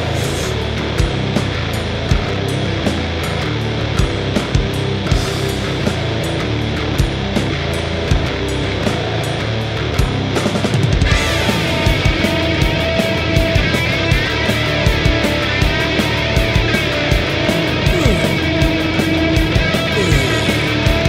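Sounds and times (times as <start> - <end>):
bass guitar: 0.0 - 21.0
distorted guitar: 0.0 - 21.0
drums: 0.0 - 21.0.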